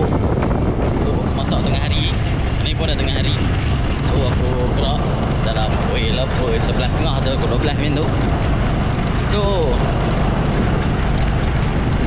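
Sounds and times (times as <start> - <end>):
motorcycle engine running: 0.0 - 12.0
wind buffeting microphone: 0.0 - 12.0.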